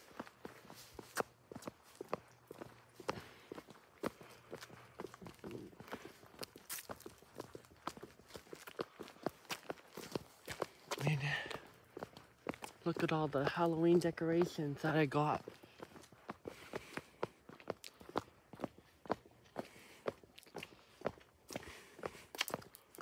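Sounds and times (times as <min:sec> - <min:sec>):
footsteps on concrete: 0:00.0 - 0:23.0
person speaking: 0:10.9 - 0:11.8, 0:12.6 - 0:15.7.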